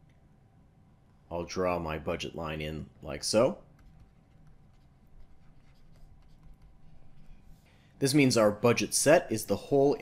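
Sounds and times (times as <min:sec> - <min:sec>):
low room hum: 0:00.0 - 0:10.0
stylus scratching on tablet screen: 0:03.7 - 0:07.8.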